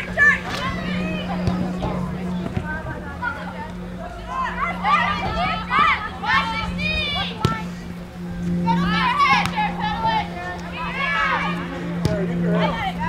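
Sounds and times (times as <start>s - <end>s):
girls shouting and calling out: 0.0s - 7.8s, 8.6s - 12.0s
steady low hum: 0.0s - 13.0s.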